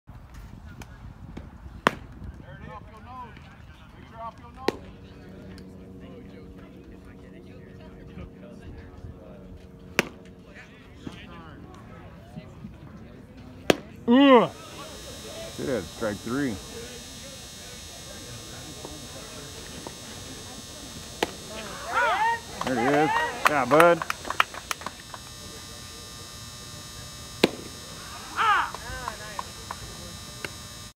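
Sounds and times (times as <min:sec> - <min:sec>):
baseball sharp crack: 0:00.8 - 0:02.3, 0:04.6 - 0:04.9, 0:09.9 - 0:10.3, 0:13.6 - 0:26.0, 0:27.3 - 0:30.7
steady hum: 0:03.9 - 0:30.9
voices calling out: 0:13.5 - 0:30.9
person shouting: 0:21.6 - 0:23.5, 0:28.0 - 0:28.9.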